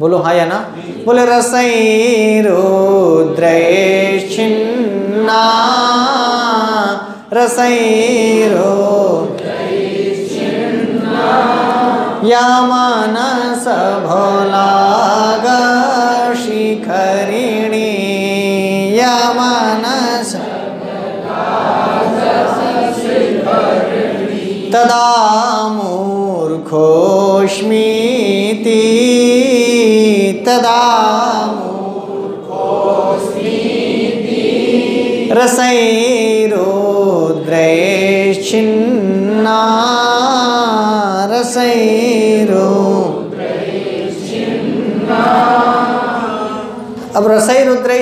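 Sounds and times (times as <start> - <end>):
man chanting verse: 0.0 - 21.3, 21.9 - 43.4, 44.1 - 48.0
group of voices chanting: 9.2 - 12.3, 20.4 - 24.8, 31.5 - 35.3, 43.1 - 47.1.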